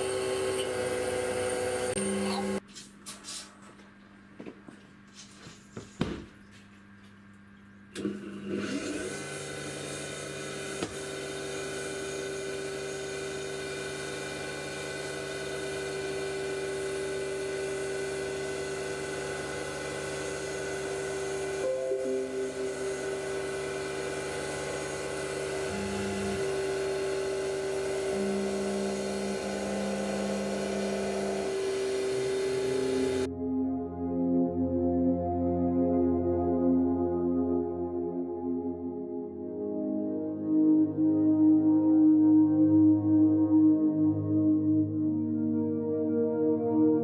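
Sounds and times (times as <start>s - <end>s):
milling spindle motor whine: 0.0s - 2.6s, 8.5s - 33.3s
axis drive tones: 10.6s - 33.3s.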